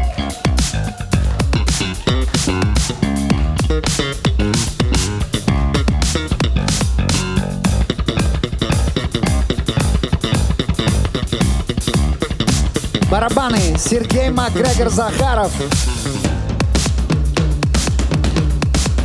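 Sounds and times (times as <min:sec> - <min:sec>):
electric bass guitar solo: 0:00.0 - 0:16.8
steady drum beat: 0:00.0 - 0:19.0.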